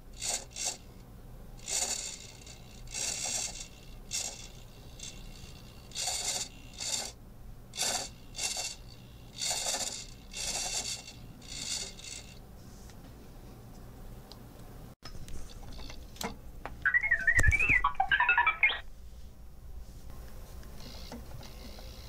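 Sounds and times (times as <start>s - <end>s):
servo motor with scratchy gears: 1.7s - 7.2s, 7.8s - 12.4s.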